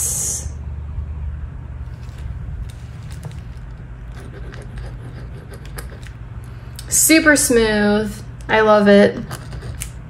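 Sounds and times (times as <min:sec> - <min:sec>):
steady low hum: 0:00.0 - 0:10.0
pen scratching on paper: 0:04.0 - 0:06.1, 0:09.2 - 0:10.0.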